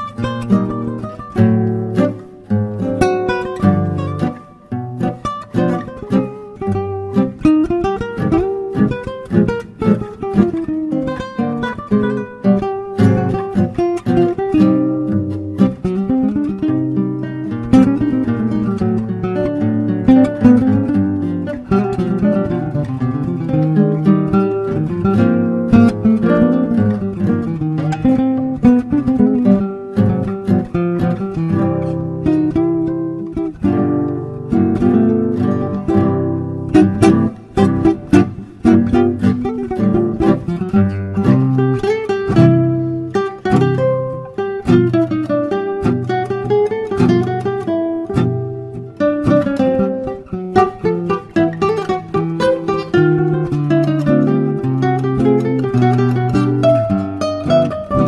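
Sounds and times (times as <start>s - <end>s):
classical guitar duet: 0.0s - 58.0s
strummed guitar chords: 0.0s - 58.0s.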